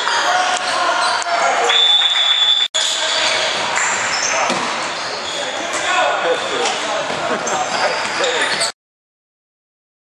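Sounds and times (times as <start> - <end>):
sneaker squeaks: 2.5 - 6.0, 6.6 - 8.8
echoing voices: 2.9 - 8.7.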